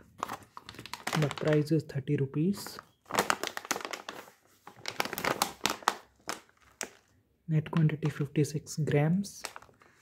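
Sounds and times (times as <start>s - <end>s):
plastic chip bag crackling: 0.0s - 7.1s, 9.2s - 10.0s.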